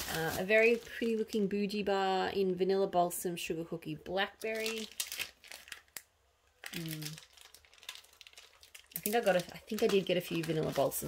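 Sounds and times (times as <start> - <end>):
plastic bags crinkling: 0.0 - 1.5, 4.3 - 6.0, 6.6 - 11.0.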